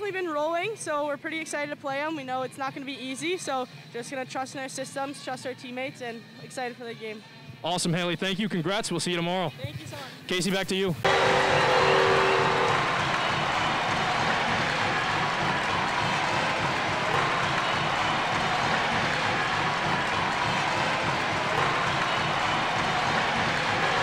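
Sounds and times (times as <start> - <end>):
steady applause: 11.1 - 24.0.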